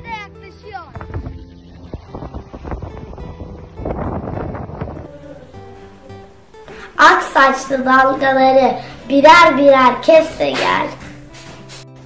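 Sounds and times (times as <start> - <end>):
soft background music: 0.0 - 12.0
wind buffeting microphone: 0.8 - 6.3.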